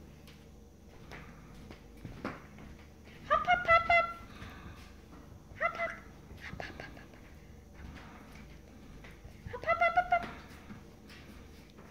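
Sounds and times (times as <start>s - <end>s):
parrot calling: 3.2s - 4.3s, 5.6s - 7.0s, 9.5s - 10.6s.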